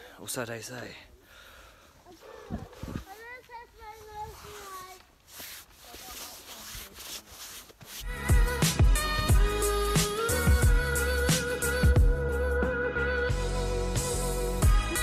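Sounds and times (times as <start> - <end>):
clothing rubbing on microphone: 2.2 - 8.1
wind on microphone: 2.5 - 3.1
music with bass beat: 8.0 - 15.0.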